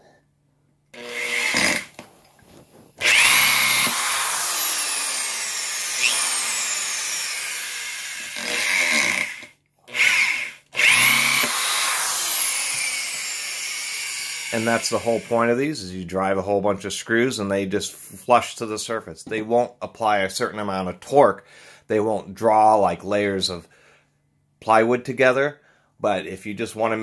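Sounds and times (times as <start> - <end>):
drywall screwdriver whining: 0.9 - 2.0, 3.0 - 15.5.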